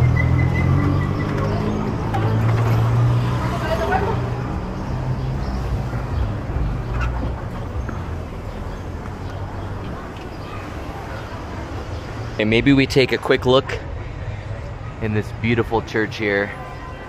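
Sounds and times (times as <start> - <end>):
vehicle engines running: 0.0 - 17.0.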